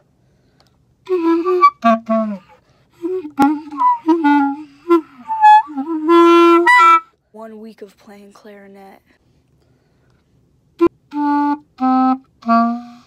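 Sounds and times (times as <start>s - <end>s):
clarinet played haltingly: 1.0s - 7.1s, 10.8s - 13.0s.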